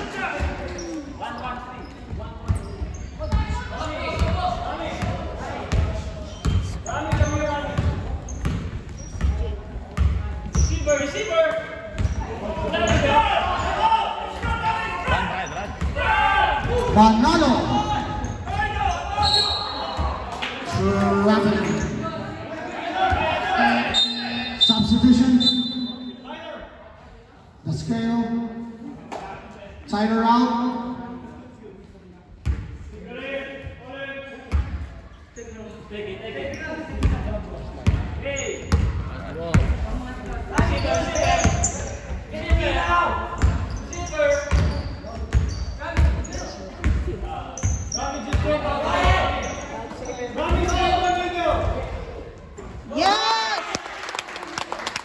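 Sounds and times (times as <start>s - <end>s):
people calling out: 22.8s - 26.2s.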